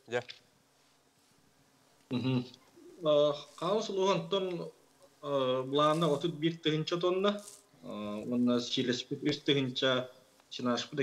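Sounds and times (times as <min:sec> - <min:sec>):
man speaking over video call: 0:02.1 - 0:11.0.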